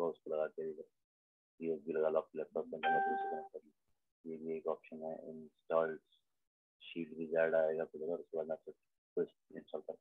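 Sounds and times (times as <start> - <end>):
man speaking: 0.0 - 0.9, 1.6 - 3.6, 4.3 - 6.1, 6.9 - 10.0.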